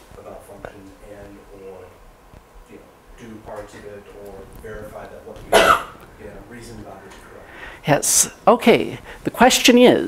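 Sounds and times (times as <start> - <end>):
loud cough: 5.5 - 6.0.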